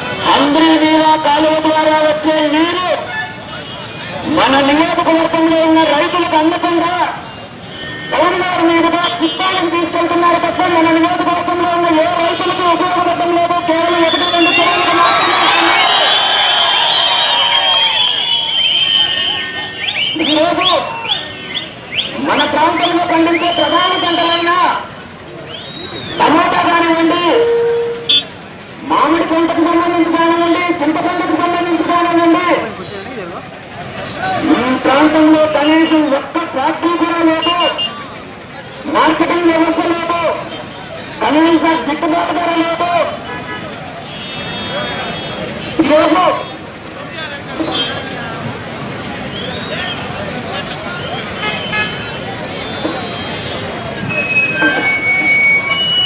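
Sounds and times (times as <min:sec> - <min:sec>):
man's voice over loudspeaker: 0:00.0 - 0:15.9, 0:20.0 - 0:21.2, 0:22.1 - 0:25.1, 0:26.1 - 0:28.0, 0:28.8 - 0:33.5, 0:34.1 - 0:37.9, 0:38.7 - 0:43.6, 0:44.7 - 0:48.4
crowd whistling: 0:13.8 - 0:24.7, 0:25.4 - 0:28.3, 0:49.2 - 0:50.2, 0:50.9 - 0:56.0.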